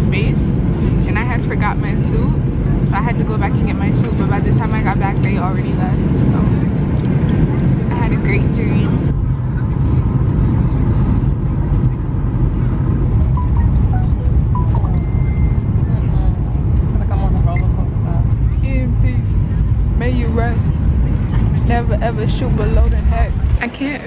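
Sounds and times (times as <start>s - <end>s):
airliner cabin rumble: 0.0s - 24.0s
music: 13.3s - 16.2s.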